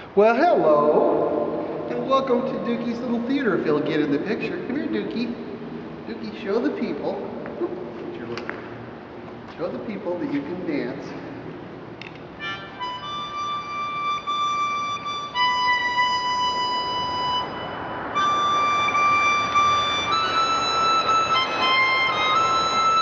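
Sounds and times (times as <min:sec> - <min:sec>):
harmonica playing held notes: 0:12.4 - 0:23.0.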